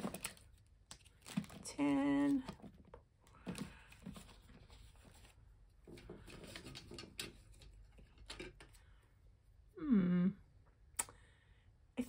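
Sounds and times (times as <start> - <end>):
plastic sleeves rustling: 0.0 - 9.0.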